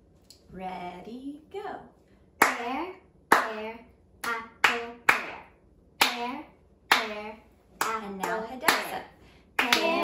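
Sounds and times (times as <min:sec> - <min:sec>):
child clapping: 0:03.3 - 0:09.0, 0:09.6 - 0:10.0.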